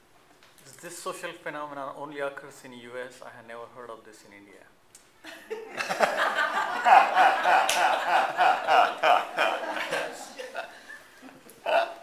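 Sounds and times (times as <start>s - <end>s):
room laughter: 5.2s - 12.0s.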